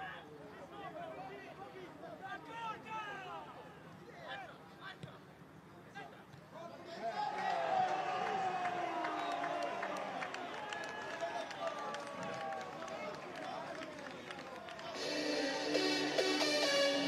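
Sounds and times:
electronic dance music: 0:15.0 - 0:17.0.

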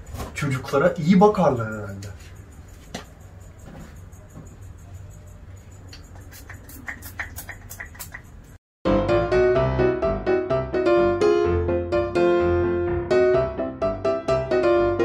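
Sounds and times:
piano music: 0:08.8 - 0:15.0.

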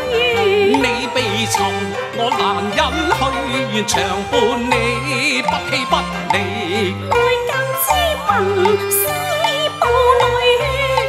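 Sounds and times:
sliding melody: 0:00.0 - 0:11.0.

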